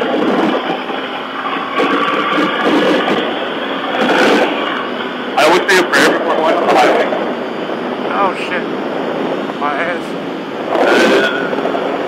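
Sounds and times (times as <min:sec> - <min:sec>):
wind rushing: 0:00.0 - 0:12.0
thin high whistle: 0:10.8 - 0:11.6.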